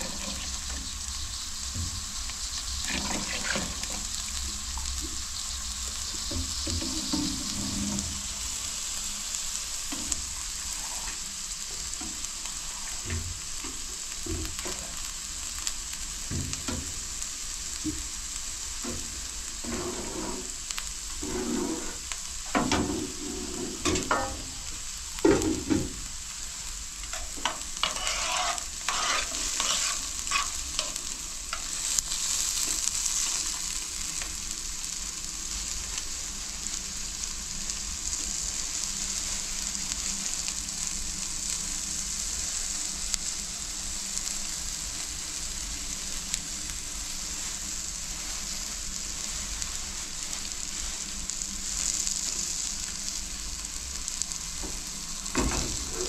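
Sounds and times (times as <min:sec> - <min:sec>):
metal ladle scraping a pot: 0:00.0 - 0:00.6, 0:02.9 - 0:04.0, 0:06.7 - 0:08.2, 0:19.6 - 0:20.5, 0:21.2 - 0:22.0, 0:27.1 - 0:31.7
food sizzling in a frying pan: 0:00.0 - 0:56.0.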